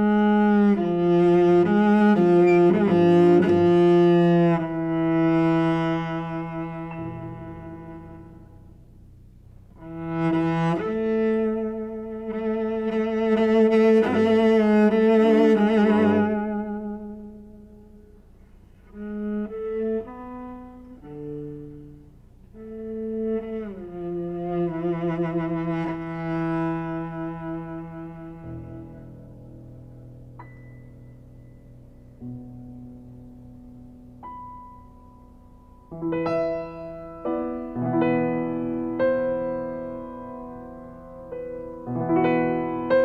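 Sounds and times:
bowed cello: 0.0 - 43.0.

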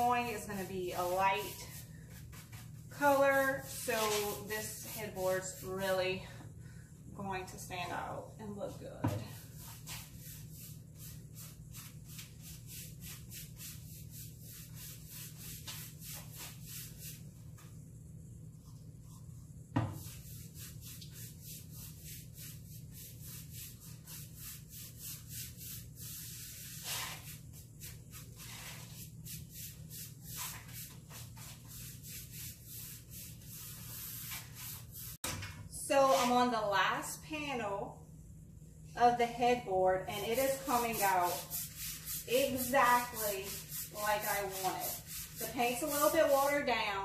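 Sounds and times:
paintbrush swishing on wood: 0.0 - 6.0, 9.3 - 17.8, 18.6 - 35.2, 36.0 - 36.5, 40.1 - 46.7
steady low hum: 0.0 - 47.0
knock: 19.7 - 20.0.

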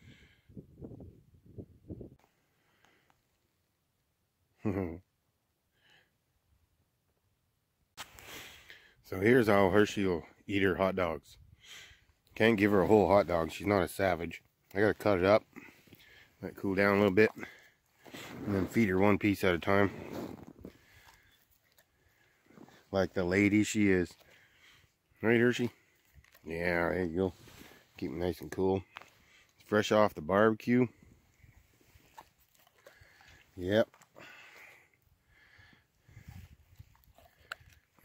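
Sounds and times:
dog sniffing and chewing: 31.8 - 34.7, 36.1 - 38.0.

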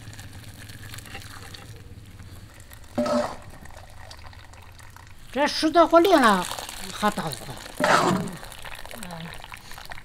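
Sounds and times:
water pouring through a sieve: 0.0 - 1.8, 2.4 - 10.0.

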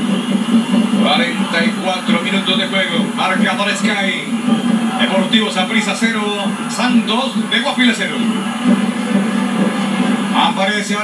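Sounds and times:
football commentator on television: 0.0 - 11.0.

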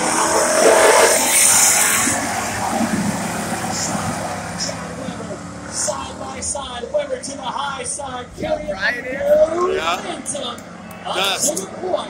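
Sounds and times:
race car engines passing: 0.0 - 12.0.

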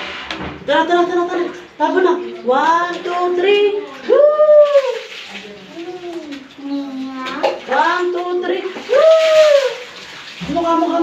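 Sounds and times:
water splashing from a dipper: 1.3 - 11.0
child calling and whining: 5.7 - 7.6.

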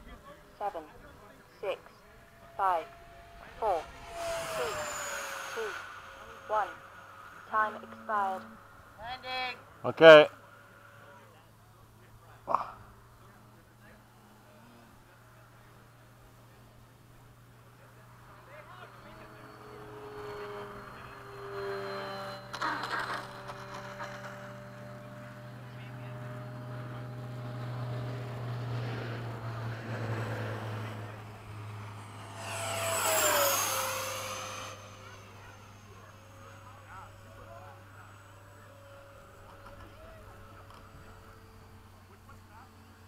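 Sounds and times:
model jet whining in flight: 0.0 - 43.0.

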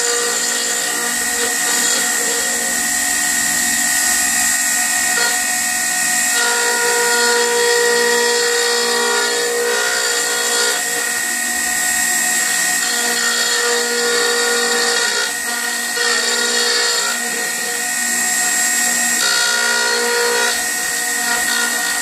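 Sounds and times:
router bit cutting wood hiss: 0.0 - 22.0
wood router whining: 0.0 - 22.0.

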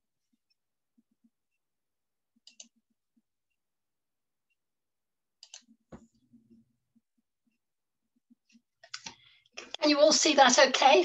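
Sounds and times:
computer mouse clicks: 2.4 - 2.8, 5.4 - 5.8, 8.5 - 9.2
woman speaking: 9.6 - 11.0.

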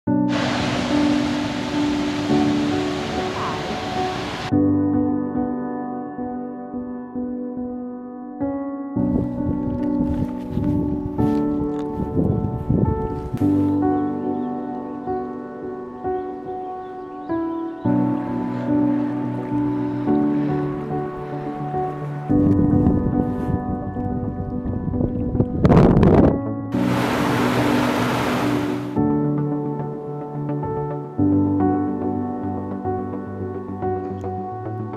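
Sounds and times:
calm background music: 0.1 - 34.9
waterfall rushing over rocks: 0.3 - 4.5, 26.8 - 29.0
brief rushing noise: 26.8 - 29.0.

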